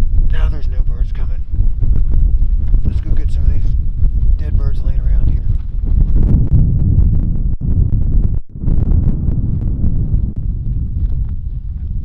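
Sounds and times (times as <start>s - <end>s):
wind buffeting microphone: 0.0s - 12.0s
man speaking: 0.3s - 1.4s, 2.9s - 3.8s, 4.4s - 5.5s.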